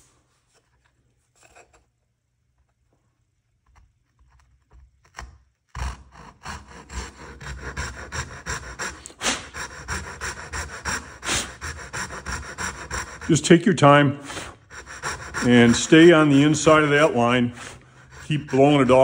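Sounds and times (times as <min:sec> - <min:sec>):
saw cutting wood: 0:05.7 - 0:19.0.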